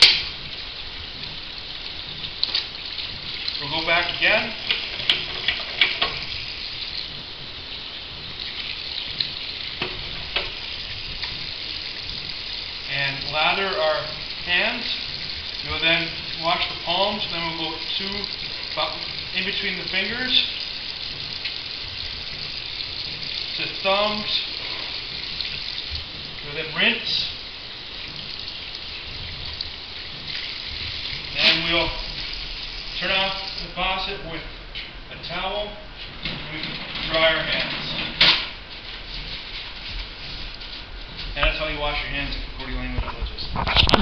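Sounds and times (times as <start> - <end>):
tap water running into sink: 0.0 - 34.3.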